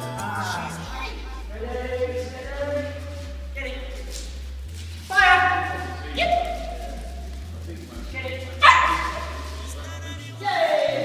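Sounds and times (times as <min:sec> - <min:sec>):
dog barking: 0:05.1 - 0:06.6, 0:08.6 - 0:09.5.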